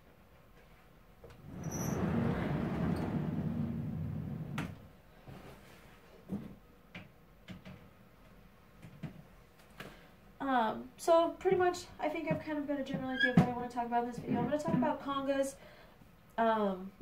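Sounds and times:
glass cabinet door scraping: 1.4s - 4.6s.

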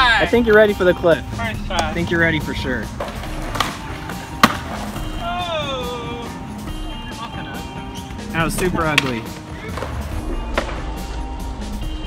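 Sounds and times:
skateboard clack on concrete: 2.9s - 5.0s, 8.5s - 11.2s.

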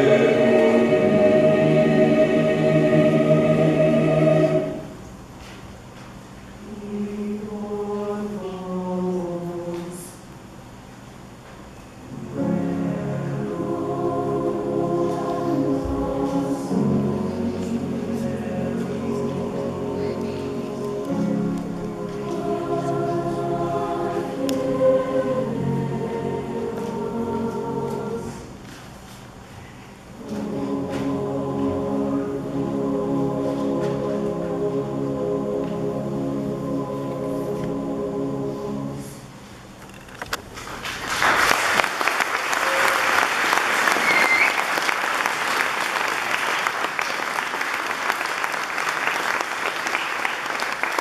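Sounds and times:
choir singing a chord: 0.0s - 5.2s, 6.6s - 10.1s, 12.1s - 28.8s, 30.0s - 39.5s
audience applauding: 40.6s - 51.0s.

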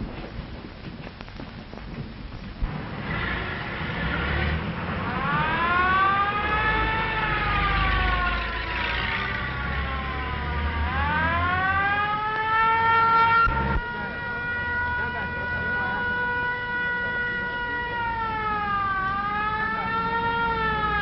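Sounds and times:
low engine rumble: 0.0s - 21.0s
police siren wailing: 3.5s - 21.0s.

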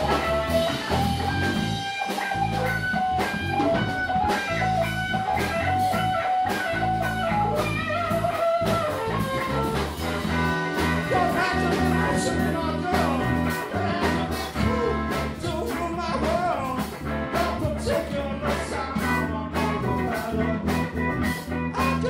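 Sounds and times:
bass guitar: 0.0s - 22.0s
drum kit beat: 0.0s - 22.0s
electric guitar: 0.0s - 22.0s.

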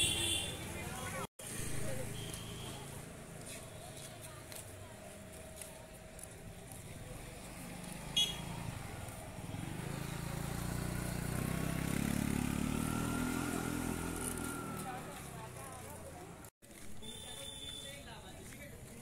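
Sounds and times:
motor scooter engine passing: 6.3s - 16.5s.

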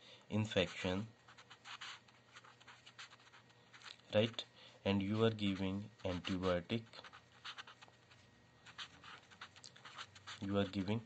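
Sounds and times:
marker scratching on paper: 0.6s - 4.5s, 5.1s - 11.0s.

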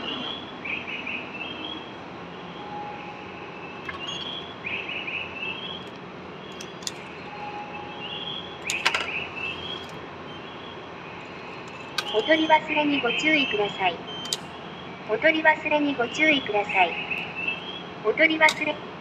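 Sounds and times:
station hum: 0.0s - 19.0s
electronic chirps: 2.6s - 4.6s
ticket machine mechanical clicks: 5.8s - 7.3s, 8.6s - 10.0s, 11.2s - 12.5s, 14.2s - 14.6s, 18.4s - 18.8s.

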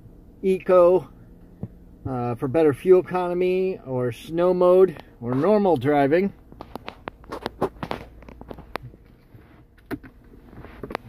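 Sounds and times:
faint low cabin hum: 0.0s - 11.0s
clicks and rustles of handling: 4.9s - 11.0s.

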